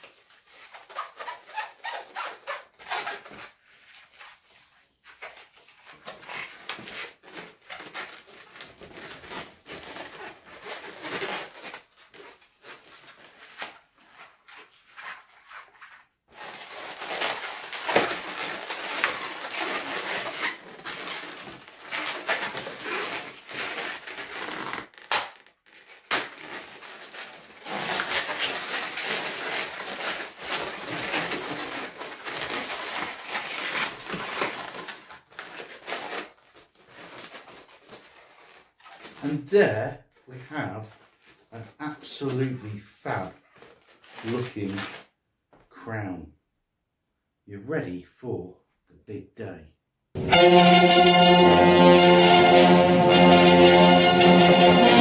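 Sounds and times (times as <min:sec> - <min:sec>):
balloons squeaking and rubbing: 0:00.0 - 0:45.2, 0:50.2 - 0:55.0.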